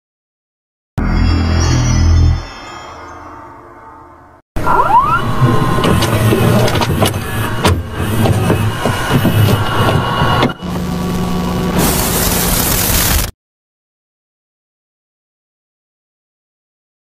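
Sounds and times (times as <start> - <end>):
low hum: 1.0 - 13.2
rising whine: 1.0 - 13.3
tape machine mechanical whirr: 4.6 - 13.3.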